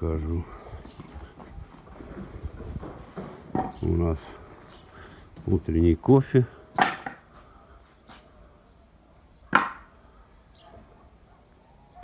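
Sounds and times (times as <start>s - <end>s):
man speaking: 0.0s - 0.7s, 3.8s - 4.5s, 5.4s - 6.6s
footsteps on paving: 0.7s - 3.8s.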